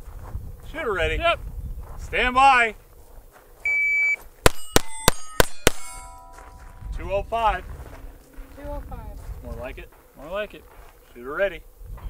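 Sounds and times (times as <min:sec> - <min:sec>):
shot timer beep: 0:03.7 - 0:06.6
pistol shots: 0:04.4 - 0:06.3
steel plates ringing: 0:04.5 - 0:06.9.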